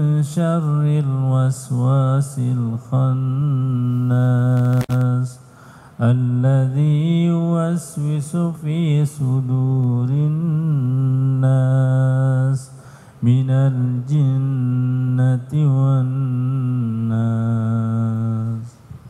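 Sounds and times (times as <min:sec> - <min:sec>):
man chanting recitation: 0:00.0 - 0:18.8.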